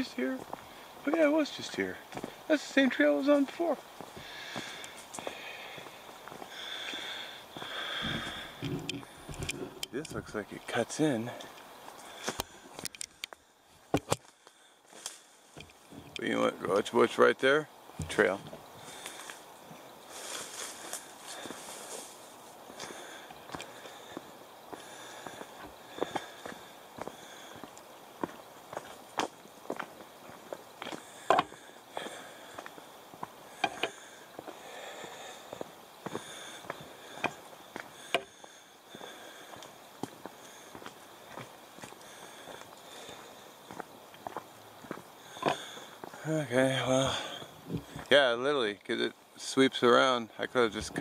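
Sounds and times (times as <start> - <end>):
footsteps crunching on leaves: 0.0 - 2.4, 18.8 - 24.2.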